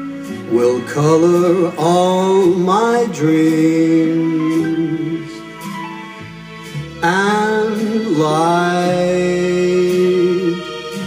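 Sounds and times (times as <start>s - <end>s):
soft instrumental backing: 0.0s - 11.0s
man singing a ballad: 0.3s - 5.8s, 7.0s - 11.0s.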